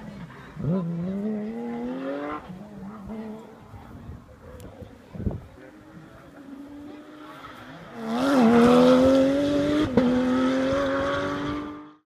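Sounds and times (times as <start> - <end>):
rally car engine pulling hard: 6.8 - 12.0.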